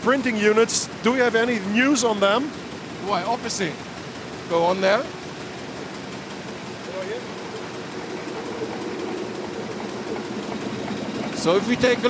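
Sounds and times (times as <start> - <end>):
printing press running: 0.0 - 12.0.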